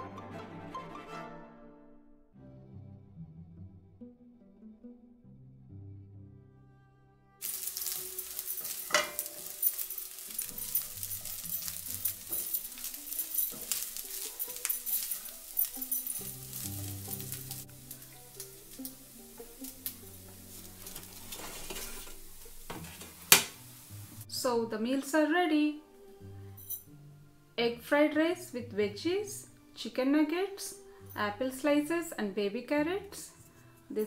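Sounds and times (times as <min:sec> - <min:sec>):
soft background music: 0:00.0 - 0:34.0
food sizzling in a frying pan: 0:07.4 - 0:24.4.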